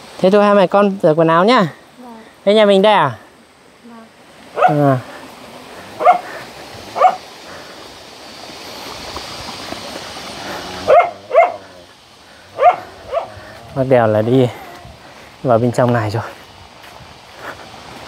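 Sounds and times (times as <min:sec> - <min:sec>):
dog barking: 0:04.6 - 0:05.0, 0:06.0 - 0:06.3, 0:07.0 - 0:07.2, 0:10.8 - 0:11.8, 0:12.6 - 0:13.4.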